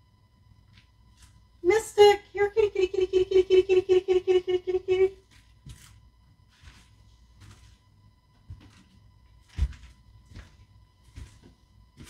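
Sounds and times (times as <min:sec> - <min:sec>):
woman calling a cat: 0:01.6 - 0:05.2.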